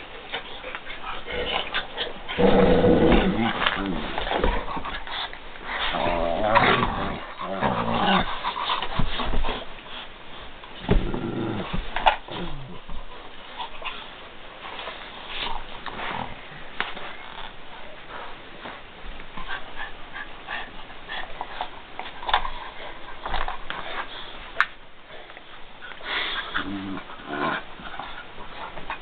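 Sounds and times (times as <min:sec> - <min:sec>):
dogs play-growling: 0:00.0 - 0:29.0.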